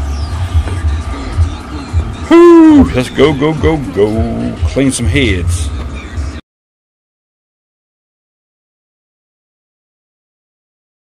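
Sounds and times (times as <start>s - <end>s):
music with pulsing bass: 0.0s - 6.4s.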